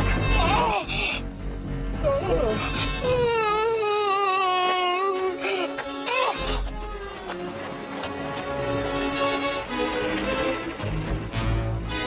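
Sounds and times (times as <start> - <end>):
cartoon background music: 0.0 - 1.3.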